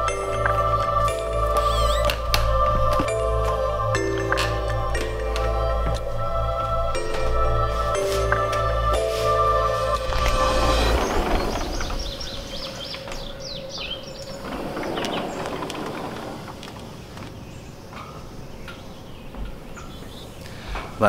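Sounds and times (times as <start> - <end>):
birds chirping: 0.0 - 21.0
outdoor background hiss: 0.0 - 21.0.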